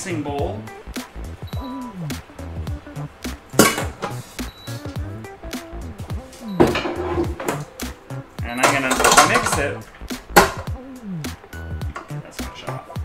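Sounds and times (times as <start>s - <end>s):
background music: 0.0s - 13.0s
saucepan clattering against metal bowl: 8.6s - 10.7s.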